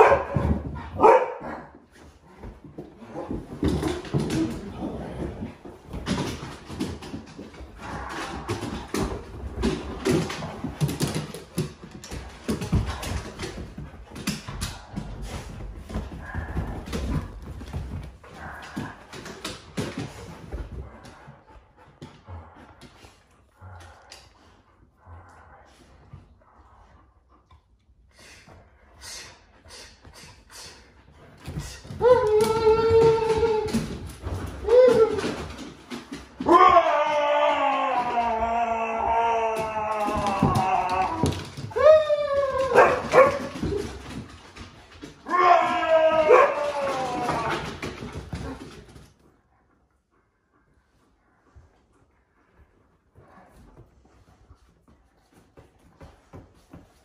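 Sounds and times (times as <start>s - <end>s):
dogs scrambling on wooden floor: 0.0s - 24.8s, 31.1s - 49.7s, 52.4s - 57.0s
dog howling: 32.0s - 35.5s, 36.4s - 43.4s, 45.2s - 47.8s.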